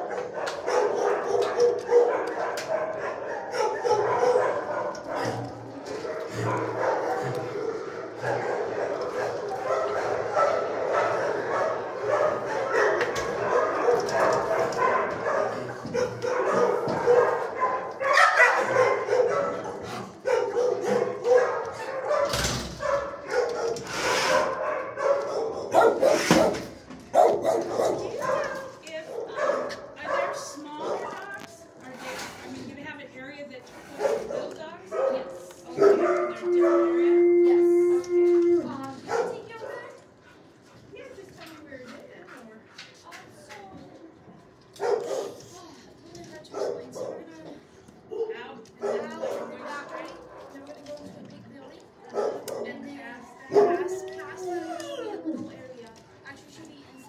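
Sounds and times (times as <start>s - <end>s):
dogs barking and whining: 0.0s - 31.4s, 34.0s - 40.6s, 44.7s - 45.5s, 46.4s - 51.0s, 51.8s - 56.0s.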